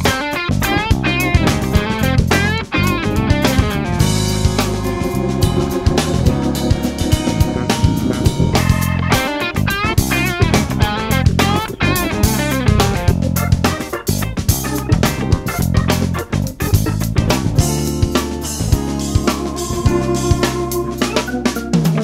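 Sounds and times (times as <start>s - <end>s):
bass guitar: 0.0s - 22.0s
drum kit: 0.0s - 22.0s
lead guitar: 0.0s - 22.0s.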